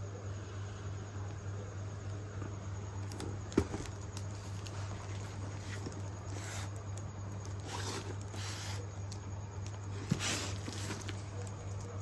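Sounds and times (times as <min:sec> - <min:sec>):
steady low hum: 0:00.0 - 0:12.0
cardboard parcel handled: 0:03.0 - 0:12.0.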